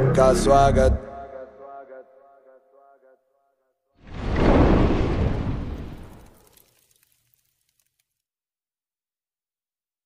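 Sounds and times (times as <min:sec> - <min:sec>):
loud deep boom: 0:04.1 - 0:06.4.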